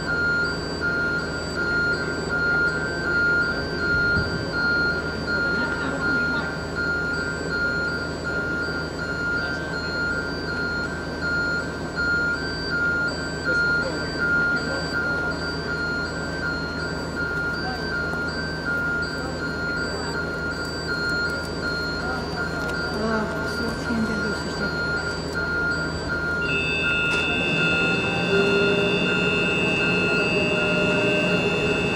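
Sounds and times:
high warning beep: 0:00.0 - 0:31.9.

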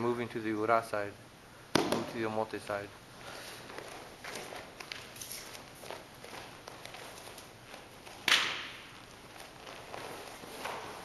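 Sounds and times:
bare feet shuffling on a mat: 0:03.2 - 0:11.0
soft scuffs: 0:03.2 - 0:11.0.

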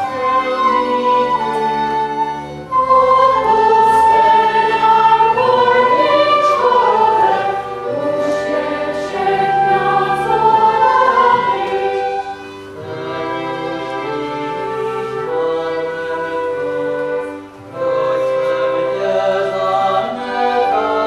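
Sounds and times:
choir singing with accompaniment: 0:00.0 - 0:21.0.

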